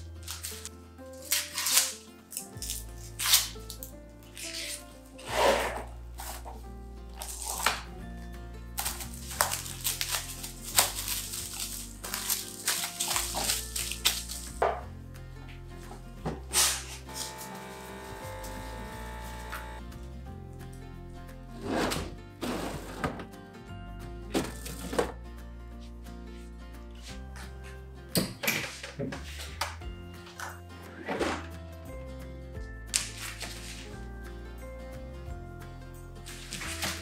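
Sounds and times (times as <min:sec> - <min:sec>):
cling wrap pulled off roll: 0:00.0 - 0:07.9, 0:08.8 - 0:14.6, 0:16.5 - 0:19.8, 0:32.9 - 0:34.0, 0:36.2 - 0:37.0
background music with bass line: 0:05.3 - 0:28.4, 0:29.0 - 0:37.0
plastic mesh bag crinkling: 0:08.8 - 0:14.6.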